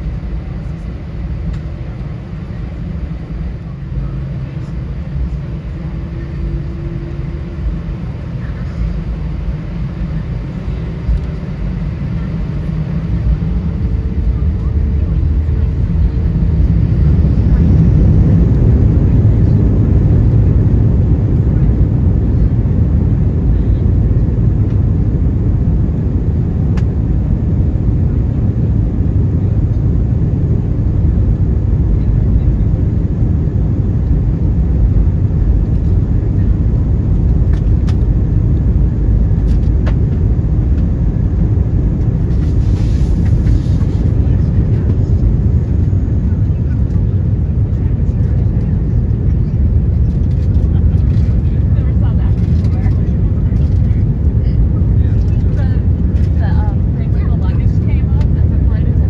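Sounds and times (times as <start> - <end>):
jet engines rumbling at takeoff: 0.0 - 59.0.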